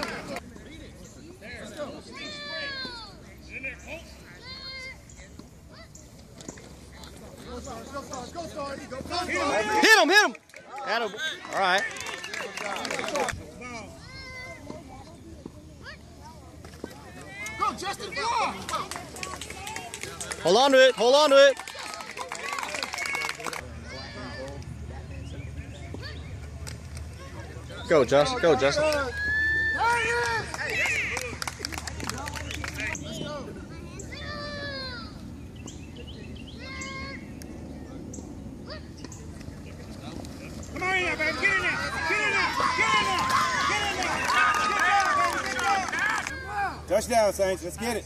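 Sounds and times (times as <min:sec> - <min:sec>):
distant voices shouting: 0:07.4 - 0:14.8, 0:27.1 - 0:31.6, 0:32.5 - 0:47.7
child shouting: 0:34.1 - 0:35.2, 0:36.6 - 0:37.3.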